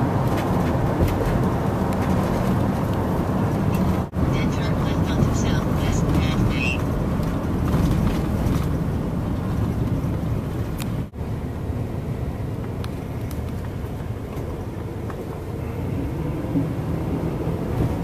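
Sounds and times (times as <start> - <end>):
car road and engine noise: 0.0 - 18.0.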